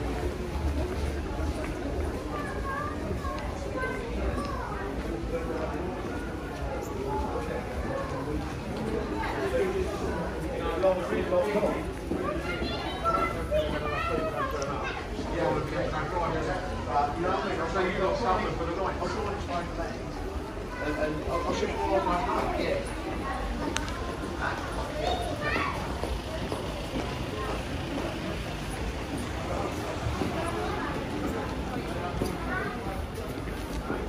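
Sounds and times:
passers-by talking: 0.0s - 34.0s
street hubbub: 0.0s - 34.0s
traffic rumble: 0.0s - 34.0s
child's high-pitched voice: 2.3s - 4.9s, 12.1s - 15.2s, 24.9s - 26.1s.

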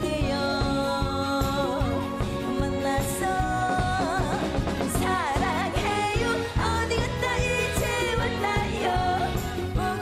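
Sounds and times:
backing band: 0.0s - 10.0s
woman singing: 0.0s - 10.0s
steady drum beat: 1.6s - 10.0s.

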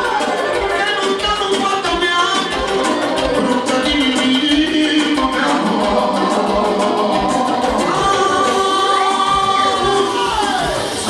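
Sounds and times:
live band music: 0.0s - 11.0s.

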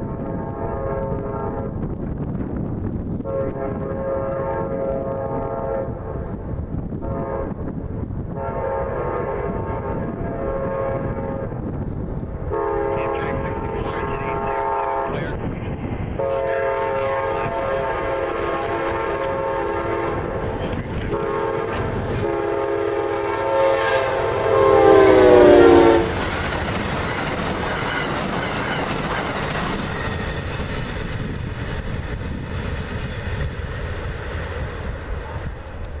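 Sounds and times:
train horn blasts: 0.0s - 1.9s, 3.2s - 11.7s, 12.5s - 15.4s, 16.2s - 26.4s
train cars rumbling: 0.0s - 36.0s
wheels clacking on rail joints: 26.1s - 34.7s.

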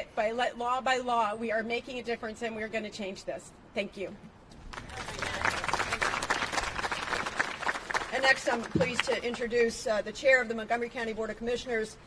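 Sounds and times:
people applauding: 4.7s - 9.4s.

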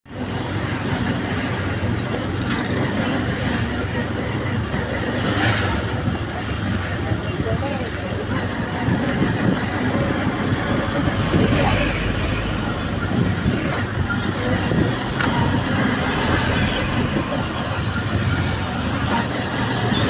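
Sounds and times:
road noise: 0.0s - 20.0s
vehicle engines rumbling: 0.0s - 20.0s
people's voices: 0.1s - 20.0s.

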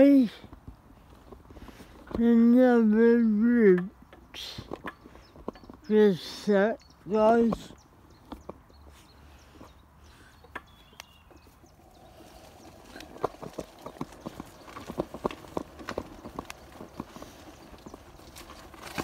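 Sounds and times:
loose stones clicking underfoot: 0.0s - 19.0s
footsteps on stony path: 10.7s - 19.0s.

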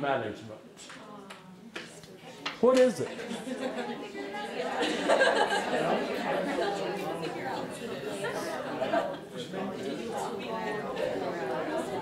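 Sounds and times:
crowd chattering: 0.6s - 12.0s.

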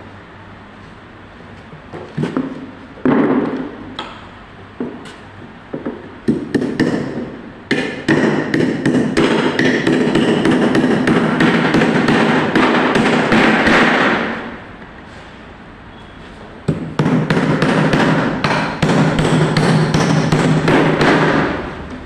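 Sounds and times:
hammer driving nails into wood: 6.3s - 14.4s.

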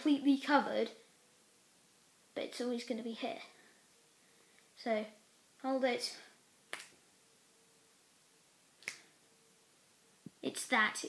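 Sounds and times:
finger snaps: 6.7s - 7.0s, 8.8s - 9.1s.

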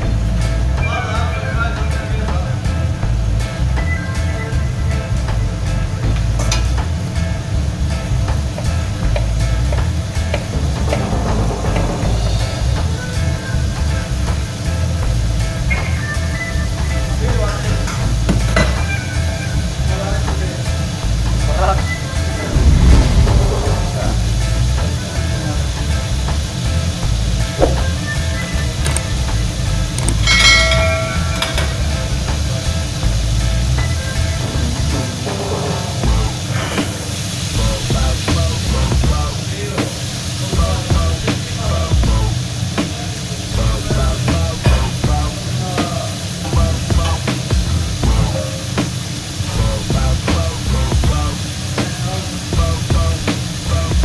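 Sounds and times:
background music: 0.0s - 54.0s
extraction hood and burners rumbling: 4.8s - 15.8s, 19.6s - 39.4s
pans and utensils clattering: 29.9s - 32.7s.

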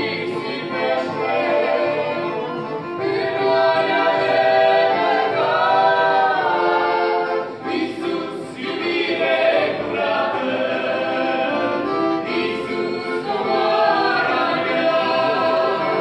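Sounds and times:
group singing a hymn in harmony: 0.0s - 16.0s.

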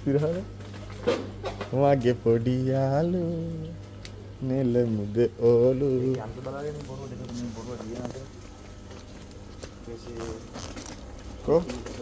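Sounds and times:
indistinct voices in conversation: 0.0s - 12.0s
low steady hum: 0.0s - 12.0s.

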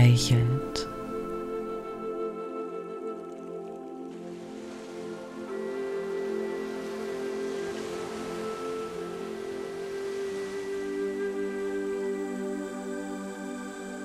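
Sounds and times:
new-age music with held chords: 0.0s - 14.0s
ocean wave washing: 0.8s - 14.0s.

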